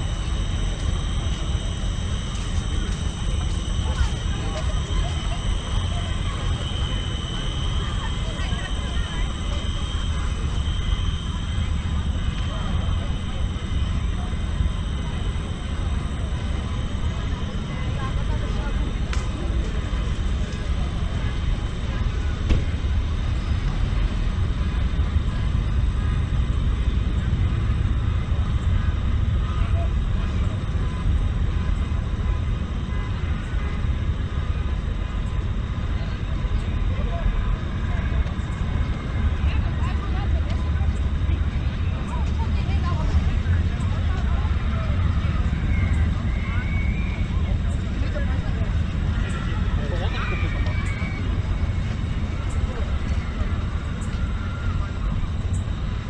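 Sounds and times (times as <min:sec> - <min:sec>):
distant voices: 0:00.0 - 0:56.0
low outdoor rumble: 0:00.0 - 0:56.0.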